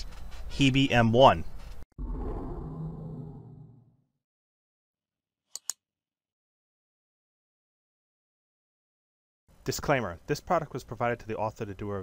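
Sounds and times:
mouse click sound effects: 0:05.6 - 0:05.8.

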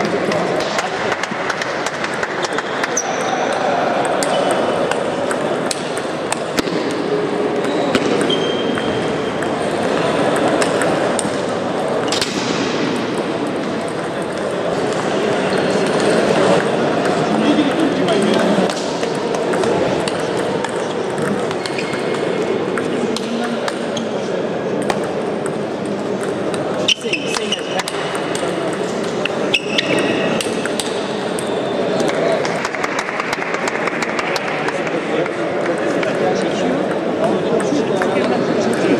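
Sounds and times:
table tennis ball hits: 0:00.0 - 0:17.4, 0:18.1 - 0:24.0, 0:24.8 - 0:34.8
murmur of voices: 0:00.0 - 0:38.9
sports hall background din: 0:00.0 - 0:38.9
table tennis ball clicking: 0:24.8 - 0:34.4.

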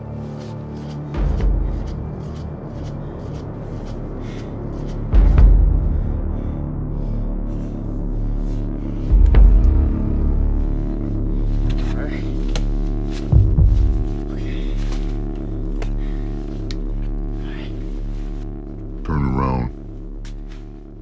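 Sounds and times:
sustained film score drone: 0:00.0 - 0:21.0
deep low hits: 0:09.1 - 0:11.9, 0:12.6 - 0:14.3.

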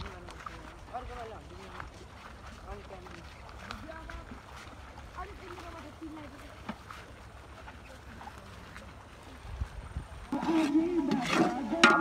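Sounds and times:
wind rumble on microphone: 0:09.3 - 0:11.8.

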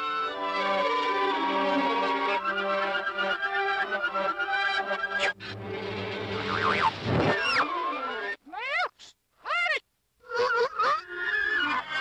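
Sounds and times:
cartoon orchestral music: 0:00.0 - 0:08.4.

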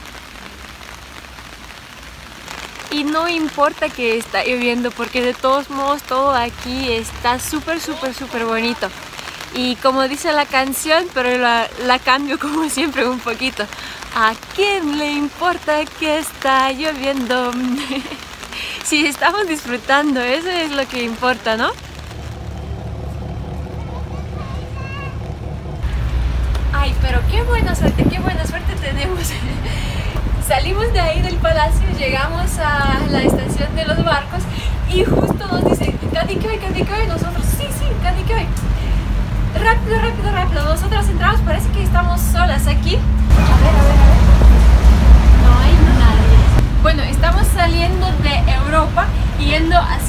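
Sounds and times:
steady rain falling: 0:00.0 - 0:50.0
ferry engine drone: 0:21.7 - 0:35.0, 0:36.2 - 0:50.0
faint voices: 0:23.5 - 0:25.6.

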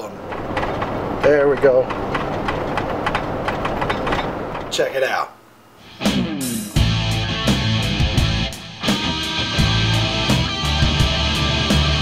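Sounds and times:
drivetrain and road noise: 0:00.0 - 0:04.8
truck shuddering rapid pulsing: 0:00.0 - 0:04.8.

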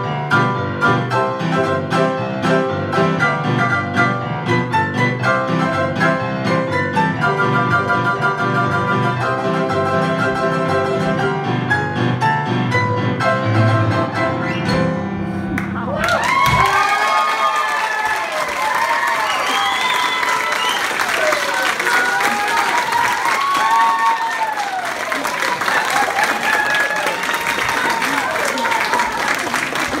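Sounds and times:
piano duet: 0:00.0 - 0:16.9
audience applauding: 0:15.6 - 0:30.0
crowd whooping and cheering: 0:15.8 - 0:30.0.

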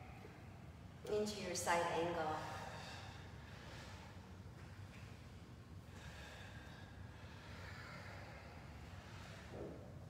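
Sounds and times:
low room hum: 0:00.0 - 0:10.0
people breathing: 0:02.4 - 0:10.0.

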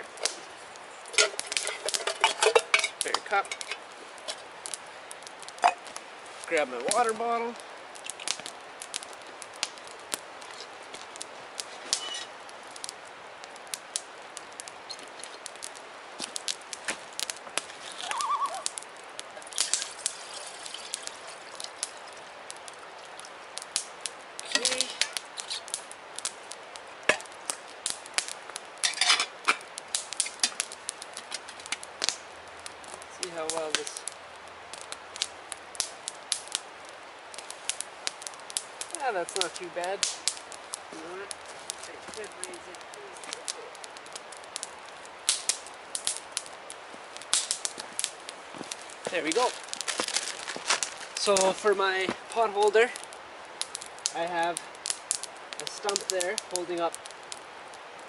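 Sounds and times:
wood campfire crackling: 0:00.0 - 0:58.0
metal bottle and pot clinking: 0:01.2 - 0:03.8, 0:28.8 - 0:29.6.

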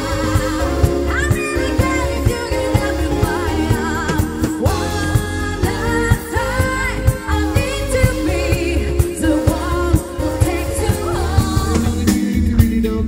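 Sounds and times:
woman singing with vibrato: 0:00.0 - 0:12.1
pop band drum beat: 0:00.0 - 0:13.0.

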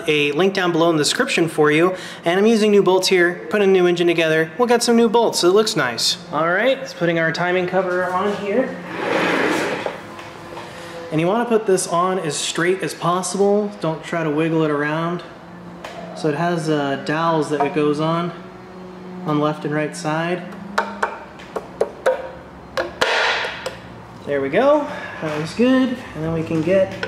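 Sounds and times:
metal cover scraping in hands: 0:08.8 - 0:10.0.

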